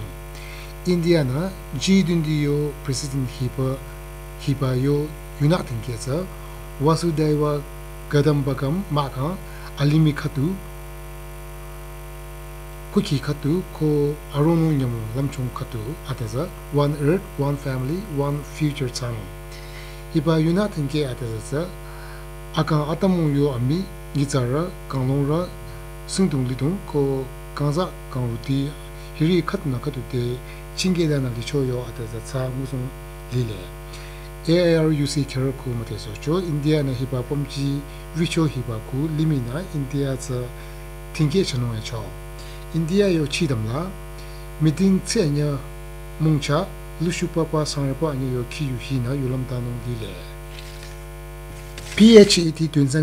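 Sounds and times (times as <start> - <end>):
steady low hum: 0.0 - 53.0
newsreader speaking: 0.8 - 10.6, 13.0 - 21.8, 22.6 - 43.9, 44.6 - 45.6, 46.2 - 50.9, 51.7 - 53.0.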